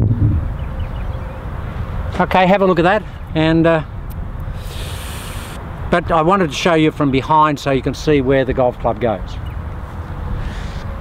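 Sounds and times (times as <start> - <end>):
outdoor background noise: 0.0 - 11.0
hiss: 4.5 - 5.6.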